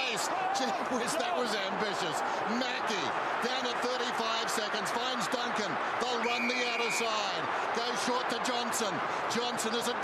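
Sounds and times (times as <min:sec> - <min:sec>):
stadium crowd roar: 0:00.0 - 0:10.0
high whistle-like tone: 0:06.2 - 0:07.1.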